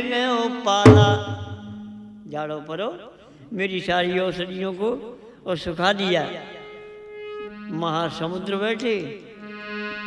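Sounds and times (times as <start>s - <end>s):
dholak drum stroke ringing: 0.8s - 2.3s.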